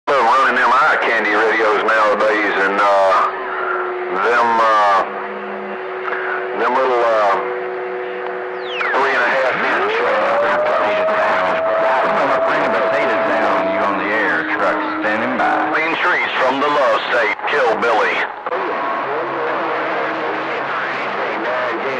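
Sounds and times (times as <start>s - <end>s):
garbled radio voices: 0.1s - 21.9s
radio static: 0.1s - 21.9s
steady heterodyne tones: 0.4s - 21.9s
whistle gliding up in pitch: 7.3s - 16.4s.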